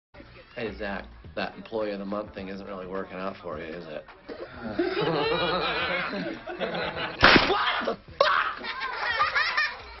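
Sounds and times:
men laughing heartily: 4.5s - 10.0s.

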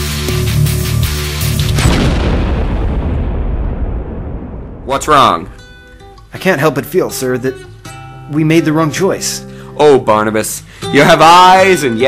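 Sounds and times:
explosion rumble: 1.5s - 6.2s.

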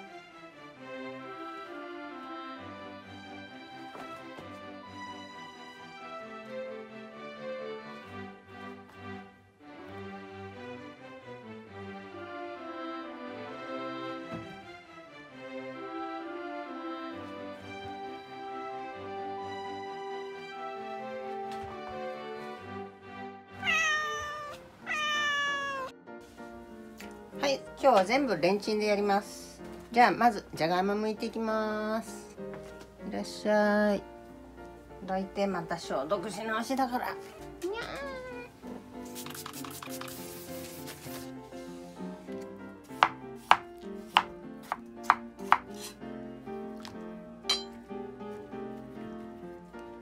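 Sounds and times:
background music: 0.0s - 50.0s
cat meowing: 23.6s - 26.0s, 37.2s - 38.7s
knife chopping on plastic board: 43.0s - 45.9s.

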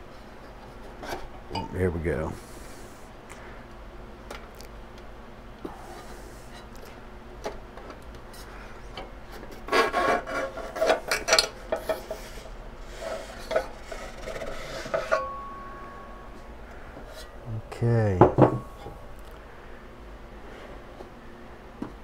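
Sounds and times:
metal chassis scraping and sliding: 9.6s - 15.3s.

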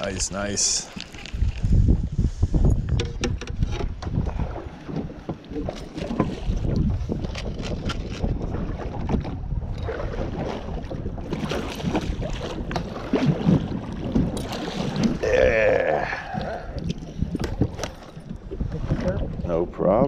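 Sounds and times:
water slapping boat hull: 0.0s - 20.0s
wind buffeting microphone: 0.0s - 20.0s.

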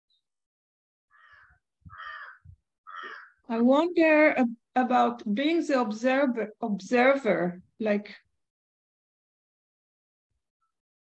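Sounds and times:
bird calling: 1.1s - 3.4s.

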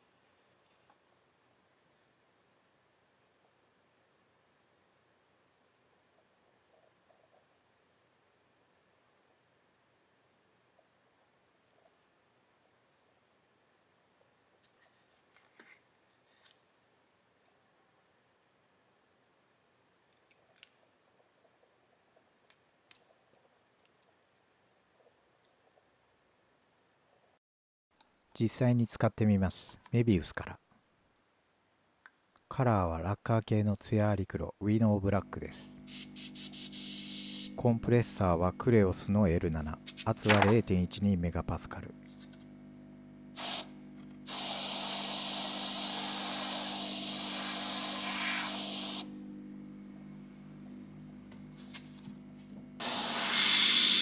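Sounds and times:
airbrush spraying hiss: 35.8s - 37.6s, 43.4s - 43.7s, 44.3s - 49.1s, 52.8s - 54.0s.

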